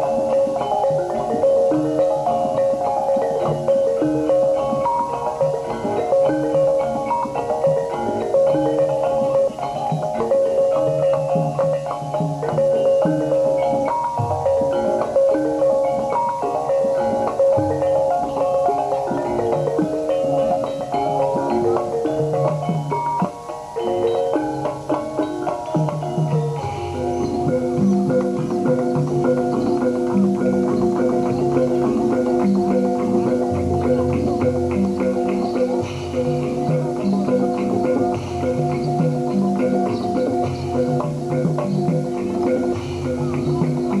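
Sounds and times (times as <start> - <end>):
gamelan kettle gongs ringing: 0.0 - 44.0.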